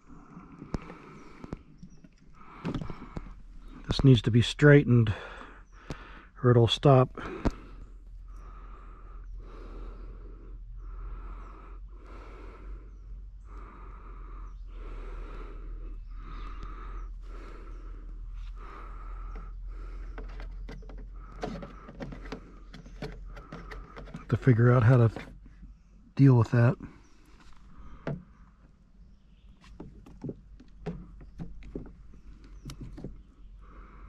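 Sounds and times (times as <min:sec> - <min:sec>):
man breathing through the nose: 0:00.0 - 0:03.9, 0:05.0 - 0:06.4, 0:07.1 - 0:24.3, 0:26.8 - 0:28.6, 0:31.8 - 0:34.0.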